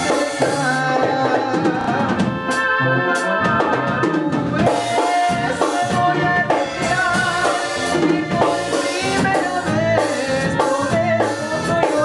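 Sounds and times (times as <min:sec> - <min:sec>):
drum kit: 0:00.0 - 0:12.0
electric bass: 0:00.0 - 0:12.0
keyboards holding tones: 0:00.0 - 0:12.0.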